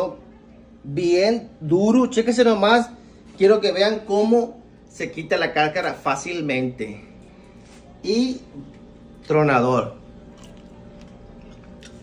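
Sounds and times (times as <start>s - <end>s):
steady low hum: 0.0s - 12.0s
person chewing shrimp: 10.2s - 12.0s.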